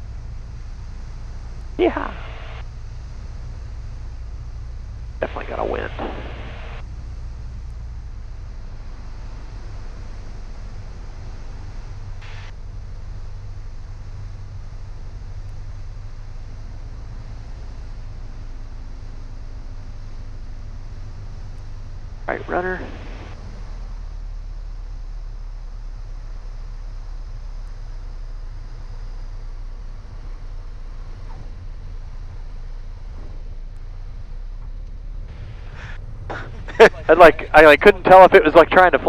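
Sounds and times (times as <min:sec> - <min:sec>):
airplane engine drone: 0:00.0 - 0:39.0
voice over intercom: 0:01.8 - 0:02.6, 0:05.2 - 0:06.7, 0:22.3 - 0:23.3, 0:36.7 - 0:39.0.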